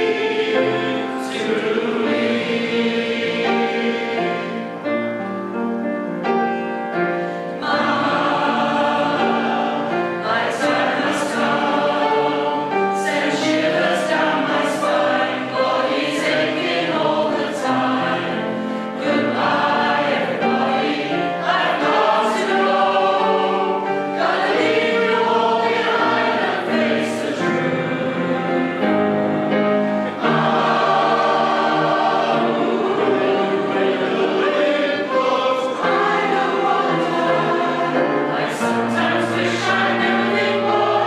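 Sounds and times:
mixed choir singing: 0.0 - 5.6, 6.4 - 41.0.

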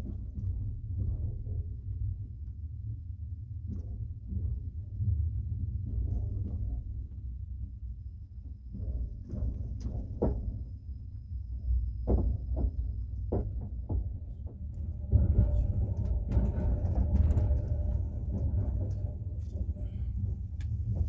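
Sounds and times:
train rumbling: 4.2 - 21.0.

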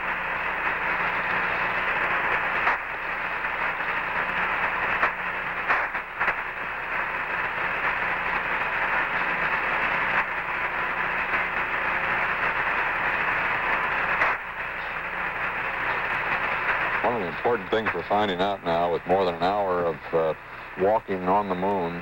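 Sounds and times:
faint hum: 0.0 - 22.0
radio static: 0.0 - 22.0.

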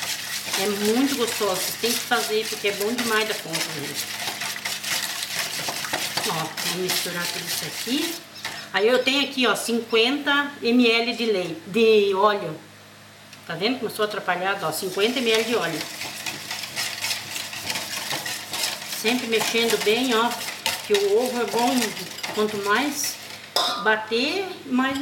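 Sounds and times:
wire whisk scraping metal bowl: 0.0 - 8.7, 14.8 - 23.7.

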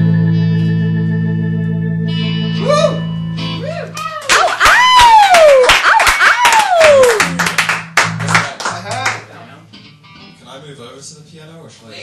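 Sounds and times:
sustained guitar chord with effects: 0.0 - 3.8, 9.2 - 10.5.

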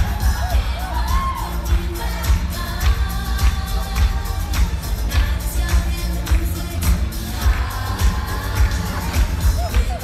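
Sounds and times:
pop music with singing: 0.0 - 10.0.

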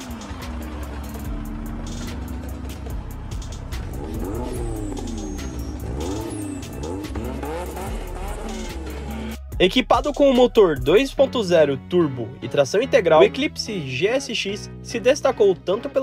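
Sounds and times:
sports car engine revving: 0.0 - 9.6
music: 0.0 - 16.0.

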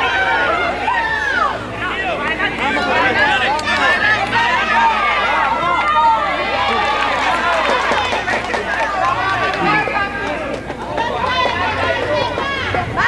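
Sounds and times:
crowd shouting: 0.0 - 13.0.

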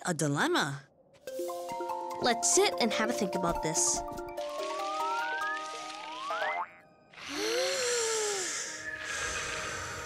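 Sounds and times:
music: 1.2 - 7.3
cartoon rising glide: 4.5 - 10.0
hissing whoosh with low tone: 8.2 - 10.0.

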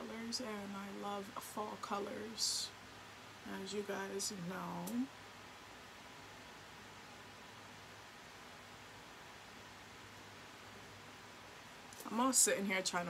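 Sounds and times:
electric fan hissing: 0.0 - 13.0
faint low hum: 0.0 - 13.0.

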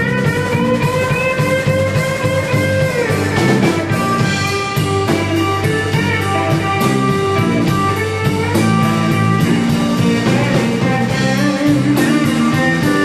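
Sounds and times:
bass guitar: 0.0 - 13.0
drum kit steady beat: 0.0 - 13.0
electric guitars: 0.0 - 13.0.

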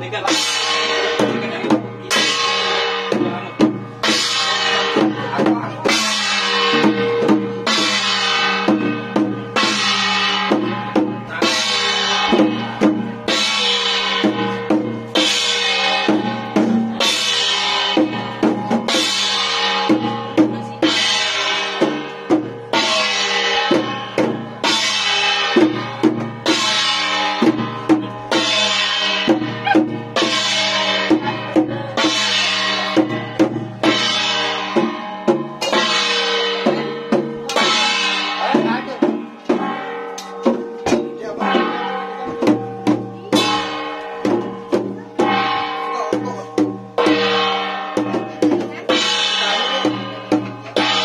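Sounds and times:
barrel drum beating: 0.0 - 51.0
cymbals clashing: 0.0 - 51.0.

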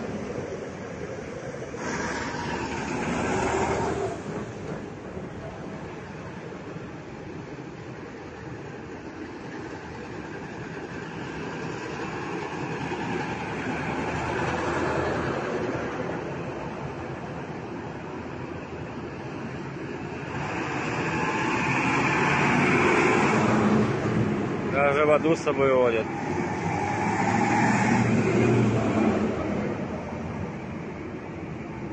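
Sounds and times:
heavy trucks driving past: 0.0 - 6.6, 19.8 - 31.9.

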